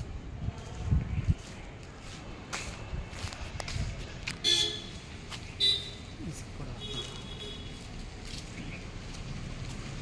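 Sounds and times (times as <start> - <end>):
vehicle horn honk: 4.4 - 5.0, 5.6 - 6.0, 6.8 - 7.8.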